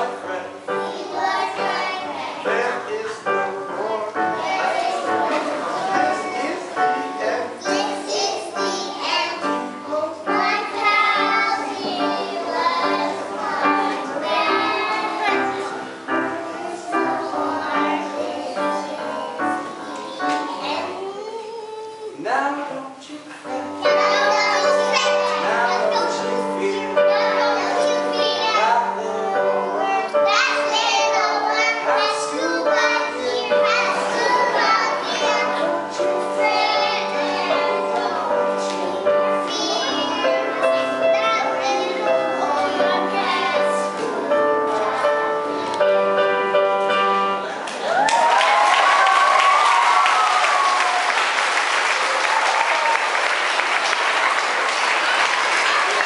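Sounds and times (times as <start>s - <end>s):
children singing: 0.0s - 22.2s, 23.4s - 46.2s
instrumental accompaniment: 23.4s - 47.7s.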